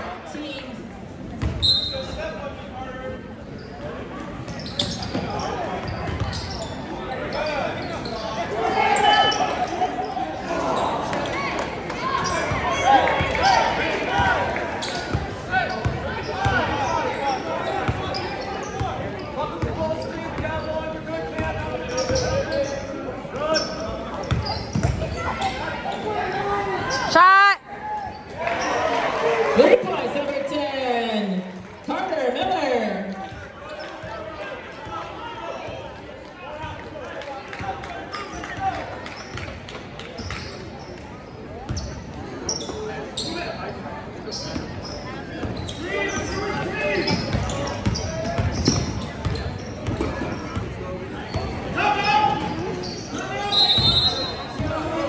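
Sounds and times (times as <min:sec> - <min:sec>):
spectators talking: 0:00.0 - 0:55.0
loud shoe squeal: 0:01.6 - 0:02.2, 0:04.5 - 0:10.2, 0:12.2 - 0:12.6, 0:15.7 - 0:20.8, 0:21.9 - 0:27.1, 0:41.7 - 0:43.6, 0:44.3 - 0:50.6, 0:51.2 - 0:54.7.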